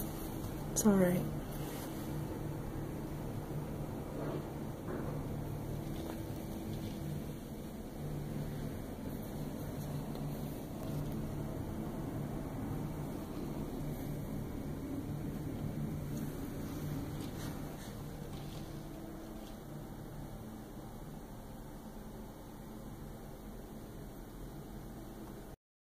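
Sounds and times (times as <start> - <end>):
distant city hum: 0.0 - 25.5.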